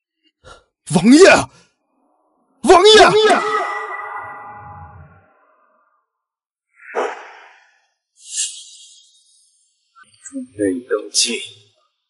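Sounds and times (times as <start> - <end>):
ringing tones: 3.1 - 5.6
low rumble: 3.9 - 5.4.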